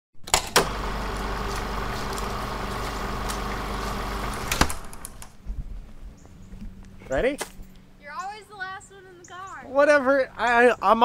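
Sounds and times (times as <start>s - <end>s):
car engine running: 0.6s - 5.4s.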